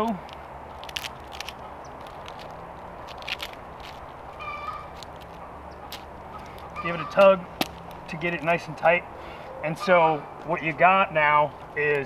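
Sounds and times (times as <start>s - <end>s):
strap and buckle clicks and rustles: 0.0s - 8.7s.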